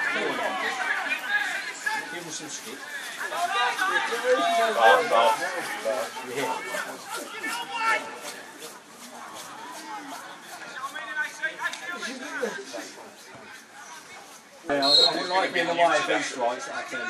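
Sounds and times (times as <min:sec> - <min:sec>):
indistinct voices calling out: 0:00.0 - 0:12.0.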